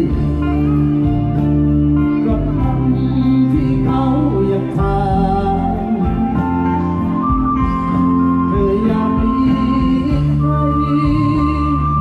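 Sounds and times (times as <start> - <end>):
electric guitar held notes: 0.0 - 12.0
live band instrumental: 0.0 - 12.0.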